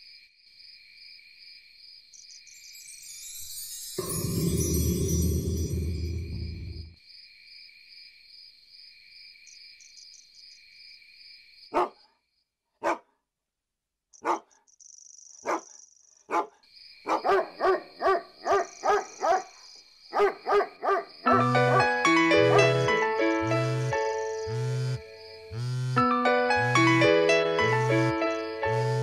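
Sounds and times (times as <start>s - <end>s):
insects chirping: 0.0s - 12.6s, 14.2s - 21.5s, 22.1s - 26.0s, 26.6s - 29.0s
music: 2.7s - 7.0s, 21.3s - 29.0s
dog barking: 11.7s - 12.1s, 12.8s - 13.2s, 14.2s - 14.6s, 15.4s - 21.1s.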